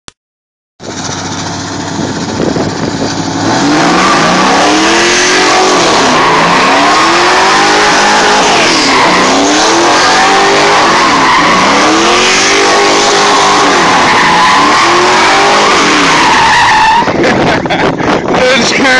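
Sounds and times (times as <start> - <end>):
car engine revving: 0.9 - 18.9
tire squeal: 3.4 - 17.4.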